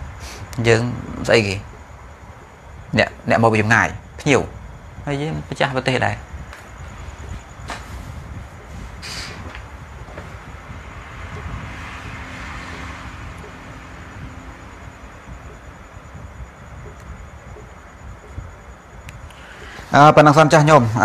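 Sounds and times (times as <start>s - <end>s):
distant engine hum: 0.0s - 21.0s
steady background noise: 0.0s - 21.0s.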